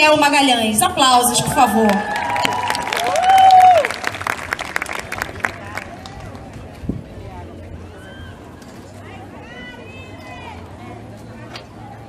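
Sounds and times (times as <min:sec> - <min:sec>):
audience applause: 0:01.8 - 0:06.6
person cheering: 0:01.9 - 0:03.9.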